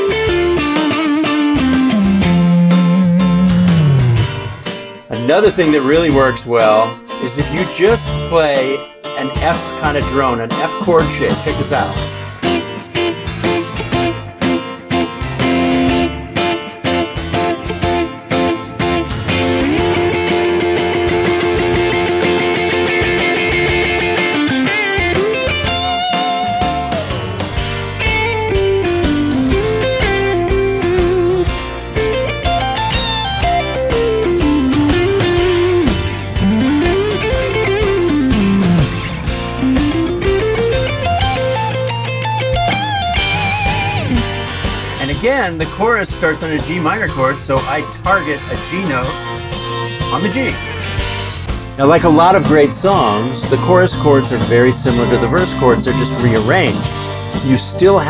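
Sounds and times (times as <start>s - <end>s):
backing track with bass: 0.0s - 58.0s
electric guitar: 0.0s - 58.0s.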